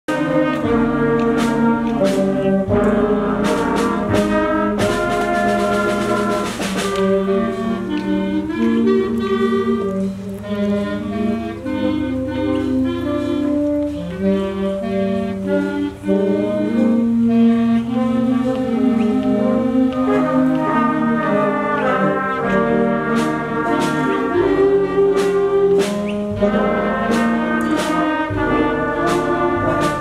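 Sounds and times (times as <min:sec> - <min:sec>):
percussion hits: 0:00.1 - 0:07.6, 0:20.0 - 0:30.0
concert band playing: 0:00.1 - 0:30.0.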